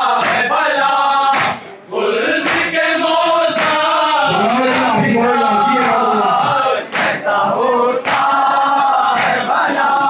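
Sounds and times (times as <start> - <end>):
men chanting together: 0.0 - 10.0
lead voice over microphone: 4.2 - 6.7.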